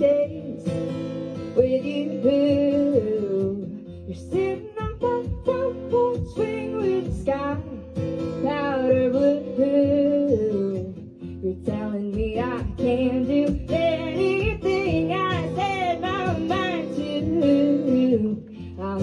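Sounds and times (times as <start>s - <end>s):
acoustic guitar: 0.0s - 19.0s
woman singing folk song: 0.0s - 19.0s.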